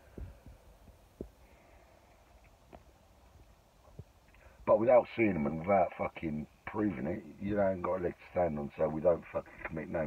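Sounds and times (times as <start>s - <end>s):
quiet low hum: 0.0s - 10.0s.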